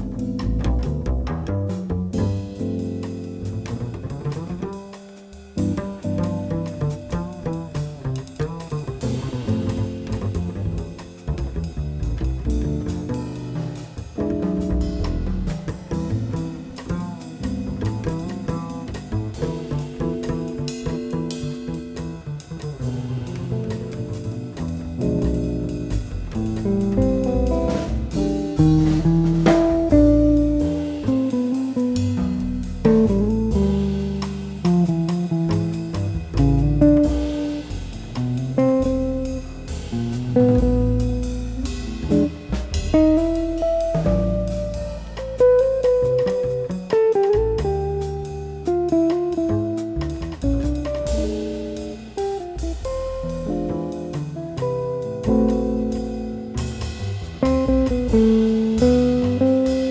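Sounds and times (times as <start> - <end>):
jazz guitar trio playing: 0.0 - 59.9.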